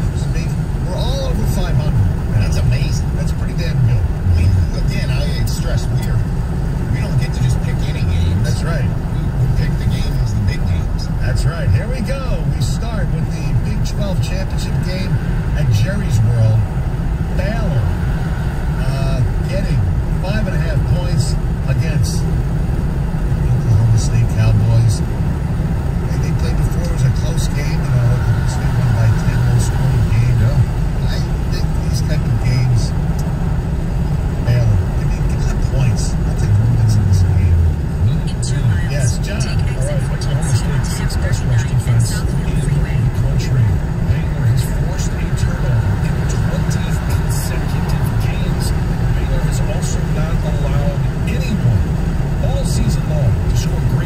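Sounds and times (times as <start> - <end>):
car road and engine rumble: 0.0 - 54.0
faint talk: 34.5 - 51.8.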